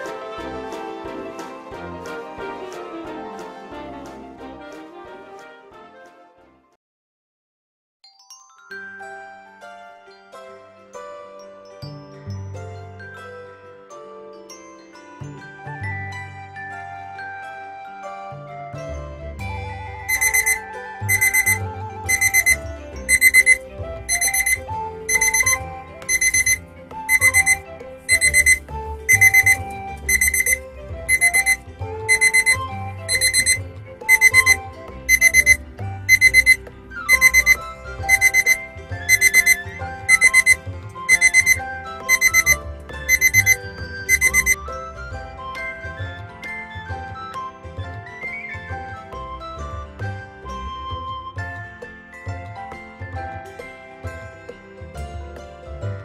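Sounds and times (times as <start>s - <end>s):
light background music: 0.0s - 6.7s, 8.3s - 56.0s
alarm clock beeping: 20.1s - 44.6s.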